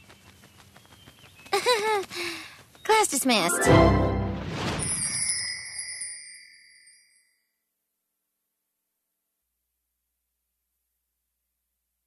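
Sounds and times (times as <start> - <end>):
high ringing sparkle chime: 3.5 - 7.6.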